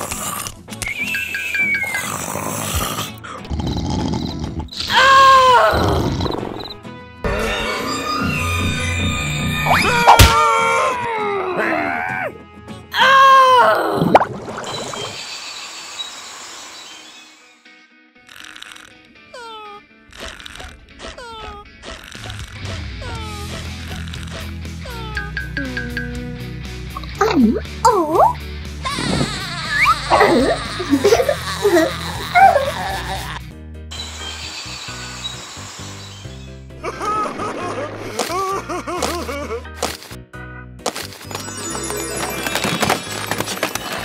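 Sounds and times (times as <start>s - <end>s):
short falling whistles: 0.8s - 2.0s
light background music: 17.4s - 44.0s
high cartoon voice giggling: 36.8s - 39.7s.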